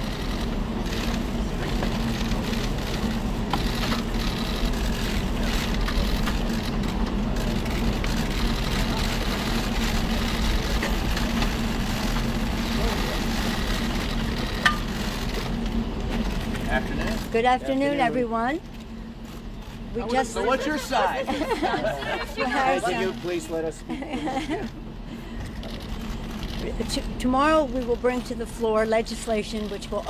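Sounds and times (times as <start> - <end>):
outdoor background hum: 0.0 - 30.0
indistinct murmuring voices: 0.2 - 30.0.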